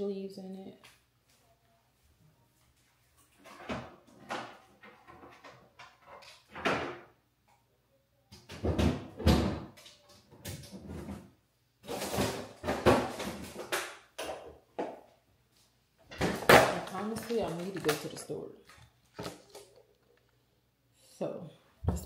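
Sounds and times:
refrigerator door opening and closing: 0:03.5 - 0:07.1.

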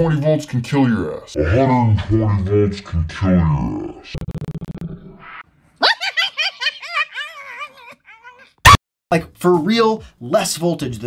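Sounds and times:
high-pitched giggling laughter: 0:05.8 - 0:08.6.

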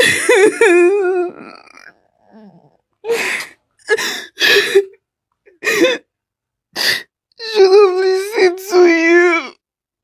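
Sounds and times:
woman sobbing: 0:00.0 - 0:01.8, 0:03.0 - 0:06.1.

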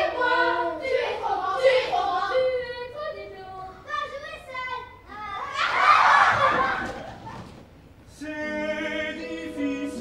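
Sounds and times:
children's chorus singing: 0:00.0 - 0:03.6, 0:08.2 - 0:10.0
children shouting: 0:05.1 - 0:07.2.

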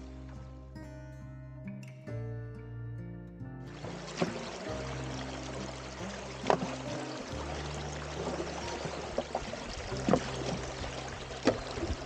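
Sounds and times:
background music with held notes: 0:00.0 - 0:12.0
water splashing at sluice box: 0:03.7 - 0:12.0.

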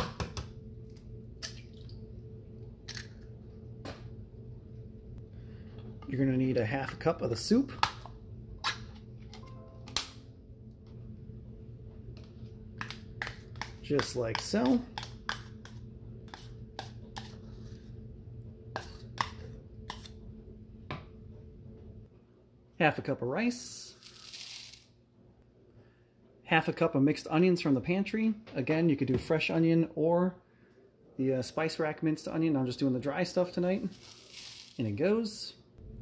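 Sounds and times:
steady low hum: 0:00.0 - 0:24.1, 0:35.5 - 0:36.0
rice grains pouring into a bowl: 0:24.0 - 0:24.9, 0:33.9 - 0:34.9.

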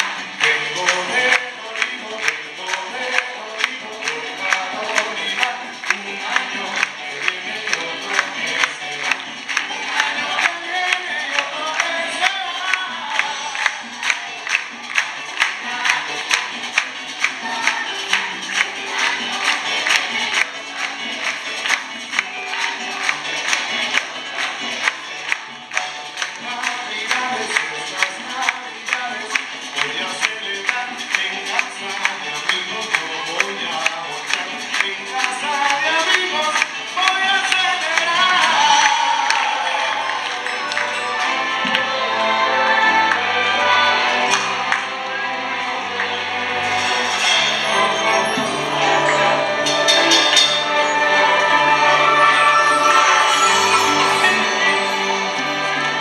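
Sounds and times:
choir singing: 0:17.2 - 0:21.4, 0:38.6 - 0:56.0
sharp percussion hits: 0:46.9 - 0:56.0.

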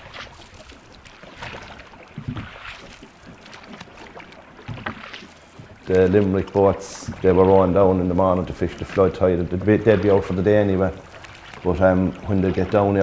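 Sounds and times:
water splashing around oars: 0:00.0 - 0:13.0.

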